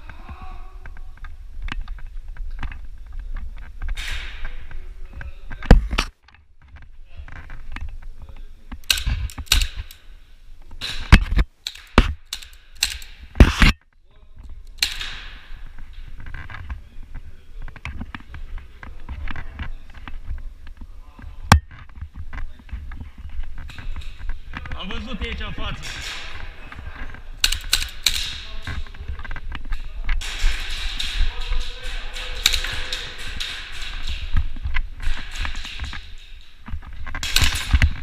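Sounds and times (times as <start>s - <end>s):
airsoft rifle shots: 8.8s - 10.0s, 10.8s - 13.7s, 27.4s - 29.0s, 30.2s - 36.2s.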